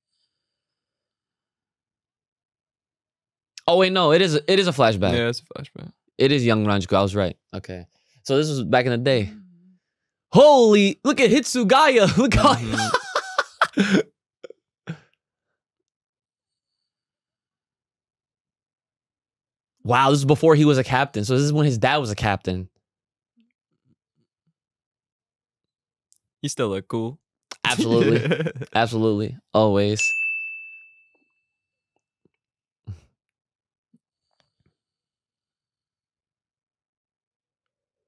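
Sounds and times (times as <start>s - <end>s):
man laughing: 11.8s - 14.1s, 27.6s - 29.1s.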